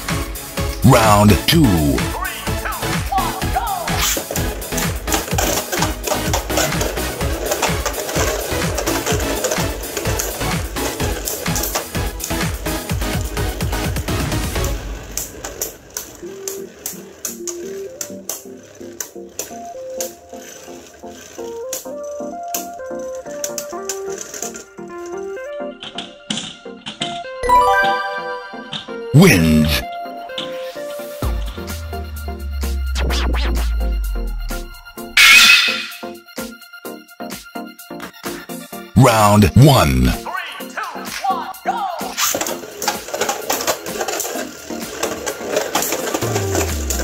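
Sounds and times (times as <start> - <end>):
background music: 0.0 - 47.0.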